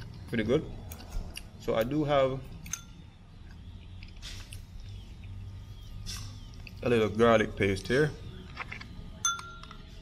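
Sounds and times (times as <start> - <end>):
metal spoon clinking ceramic bowl: 9.2 - 9.8.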